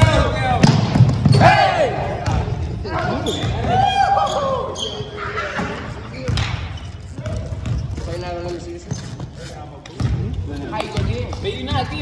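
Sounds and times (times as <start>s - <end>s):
basketball bouncing on wooden floor: 0.6s - 1.4s, 7.2s - 9.2s, 9.9s - 12.0s.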